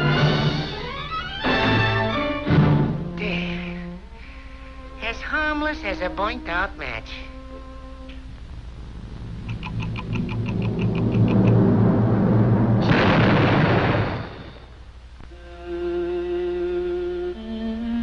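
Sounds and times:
cartoon orchestral music: 0:00.0 - 0:03.2
bomb explosion sound effect: 0:11.0 - 0:14.8.

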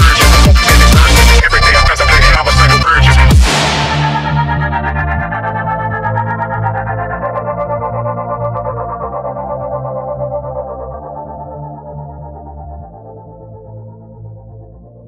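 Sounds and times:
distorted synth chords: 0:00.0 - 0:14.2
held synth bass: 0:00.0 - 0:15.0.

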